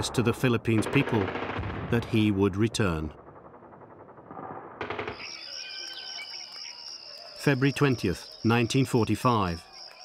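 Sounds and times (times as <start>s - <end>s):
crickets chirping: 4.8s - 10.0s.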